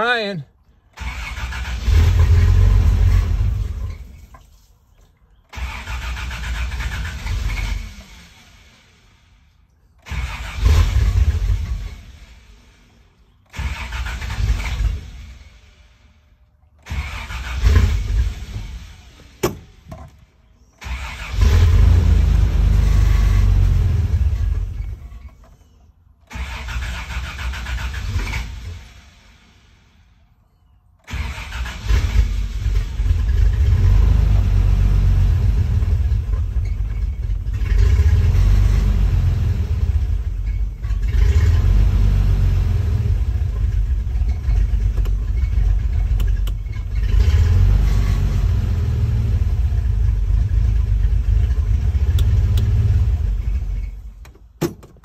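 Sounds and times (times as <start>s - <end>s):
engine starting and stalling: 0.8s - 30.3s, 30.9s - 55.0s.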